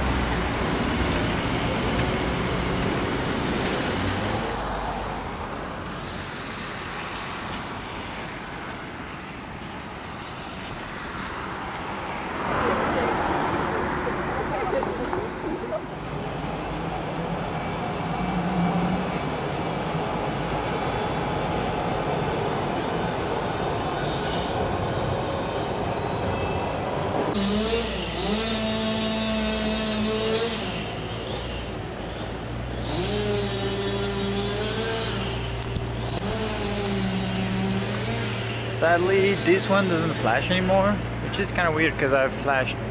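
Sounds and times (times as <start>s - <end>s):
traffic noise: 0.0s - 42.9s
tram running past: 12.4s - 27.3s.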